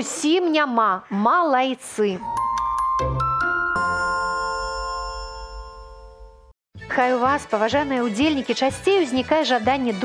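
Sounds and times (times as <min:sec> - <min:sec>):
jingle closing chord: 0:02.2 - 0:06.5.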